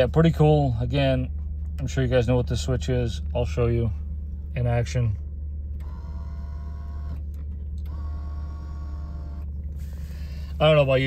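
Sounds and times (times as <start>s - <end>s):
small electric motor whirring: 5.8s - 7.2s, 7.8s - 9.5s.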